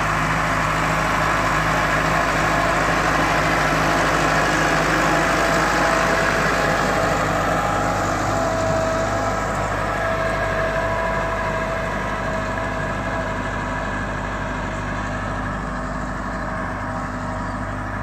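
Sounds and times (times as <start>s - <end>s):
tractor diesel engine running: 0.0s - 18.0s.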